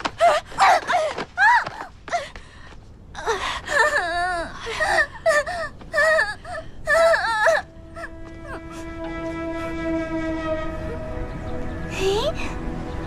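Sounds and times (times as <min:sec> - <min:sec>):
young woman wailing: 0:03.7 - 0:08.7
held note of background music: 0:07.6 - 0:13.0.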